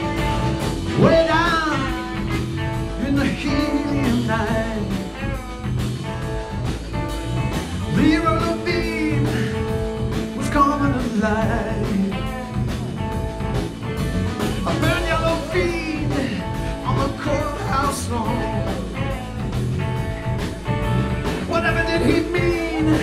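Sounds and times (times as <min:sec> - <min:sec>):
rock band playing live: 0:00.0 - 0:23.0.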